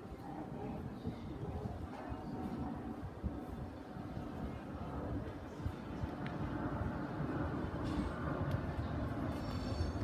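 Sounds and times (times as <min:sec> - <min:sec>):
train rumbling past: 0:02.3 - 0:10.0.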